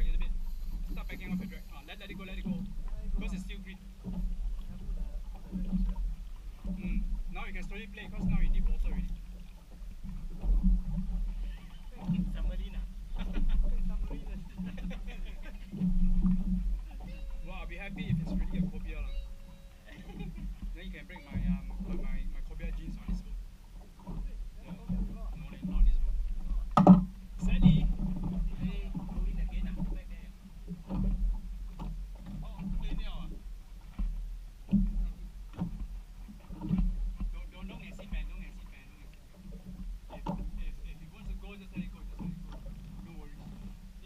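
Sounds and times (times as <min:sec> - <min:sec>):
steady low rumble: 0:00.0 - 0:31.7
knocks on boat: 0:00.0 - 0:44.0
water slapping boat hull: 0:00.0 - 0:44.0.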